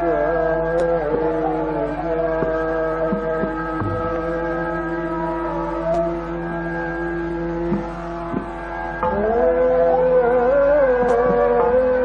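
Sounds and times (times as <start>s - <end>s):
steady drone held notes: 0.0s - 12.0s.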